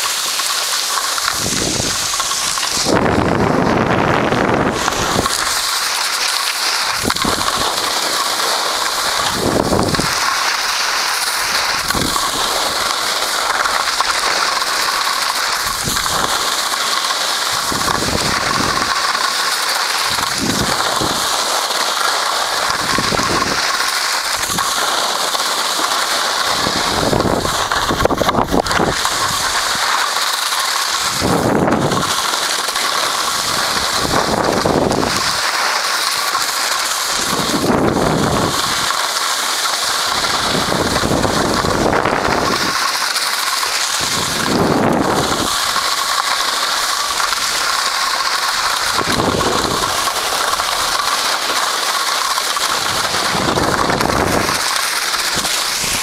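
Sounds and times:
skis scraping over snow: 0:00.0 - 0:56.0
wind buffeting microphone: 0:01.1 - 0:06.2, 0:06.8 - 0:19.2, 0:20.0 - 0:21.5, 0:22.4 - 0:25.5, 0:26.3 - 0:30.0, 0:31.0 - 0:39.0, 0:40.0 - 0:43.0, 0:43.7 - 0:51.5, 0:52.3 - 0:56.0.

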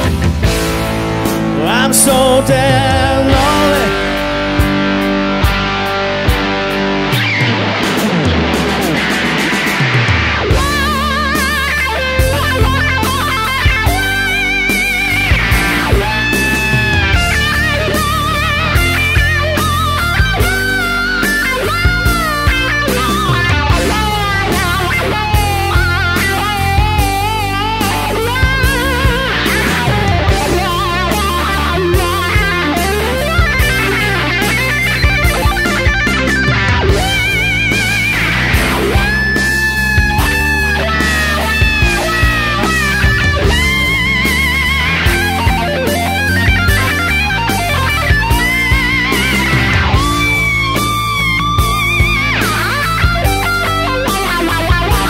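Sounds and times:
electric guitar solo: 0:00.0 - 0:55.0
slow rock bass and drums: 0:00.0 - 0:55.0.

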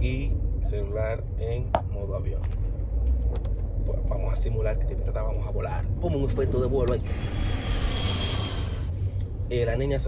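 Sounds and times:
jet airplane rush with whine: 0:00.0 - 0:10.0
low car rumble: 0:00.0 - 0:10.0.

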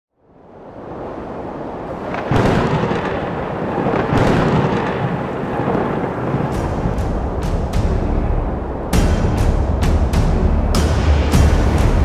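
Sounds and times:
storm wash: 0:00.1 - 0:12.0
thunder rumbling: 0:00.6 - 0:10.1
loud thunderclaps: 0:01.9 - 0:08.0.

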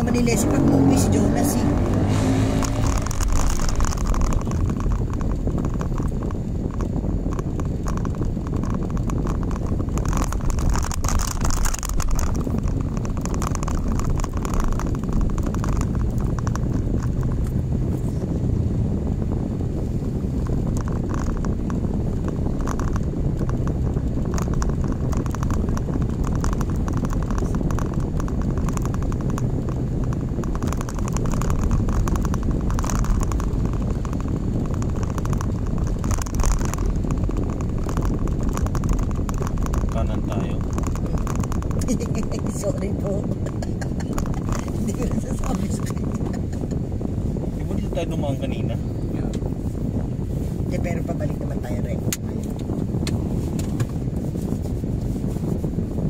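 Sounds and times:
car engine and tyre noise: 0:00.0 - 0:56.0.

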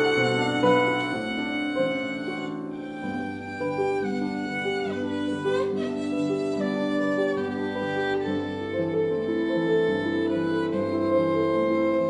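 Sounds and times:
piano accompaniment: 0:00.0 - 0:12.0
violin melody: 0:00.0 - 0:12.0.

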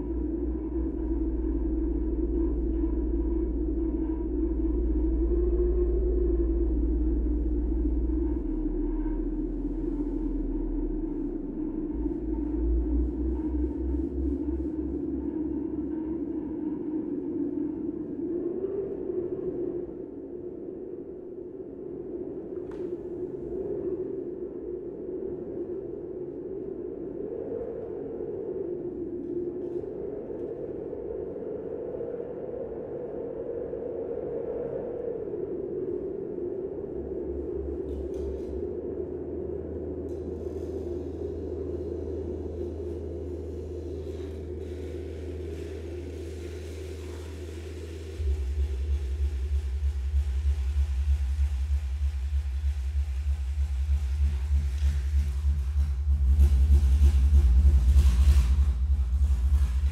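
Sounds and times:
throbbing low tone: 0:39.5 - 0:59.9
low bass tone: 0:40.1 - 0:59.9.

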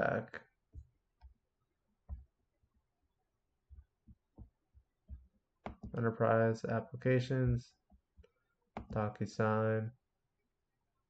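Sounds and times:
computer mouse clicking and thumping: 0:02.0 - 0:02.3, 0:03.7 - 0:06.0, 0:07.9 - 0:09.1.

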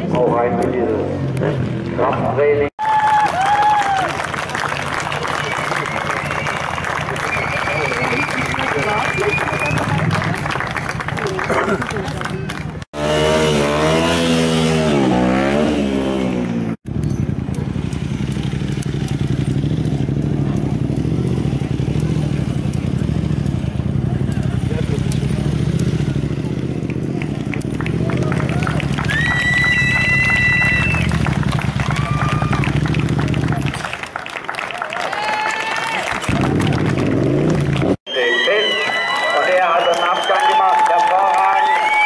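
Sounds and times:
motorcycle engine revving: 0:12.8 - 0:33.9, 0:36.3 - 0:38.0
high-pitched tire squeals: 0:29.0 - 0:31.2, 0:38.1 - 0:40.6, 0:41.5 - 0:42.0.

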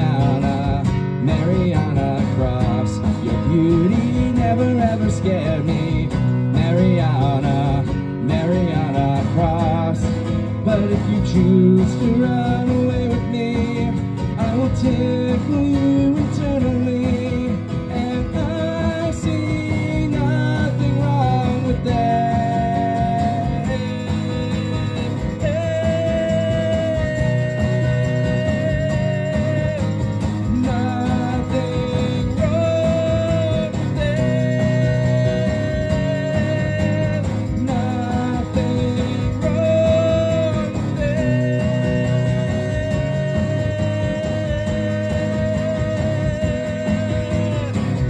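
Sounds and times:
acoustic guitar strumming: 0:00.0 - 0:48.0.

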